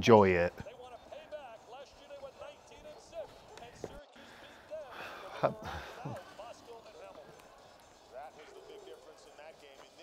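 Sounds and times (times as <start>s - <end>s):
basketball game sounds: 0.0s - 10.0s
commentator talking on television: 0.0s - 10.0s.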